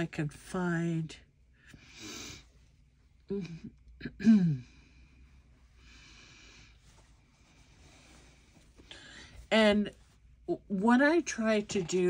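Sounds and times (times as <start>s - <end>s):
woman humming: 3.3s - 4.8s.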